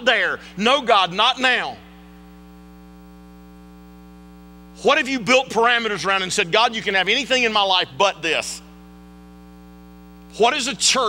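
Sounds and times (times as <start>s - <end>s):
man's voice: 0.0s - 1.9s, 4.8s - 8.7s, 10.3s - 11.0s
electrical mains hum: 0.0s - 11.0s.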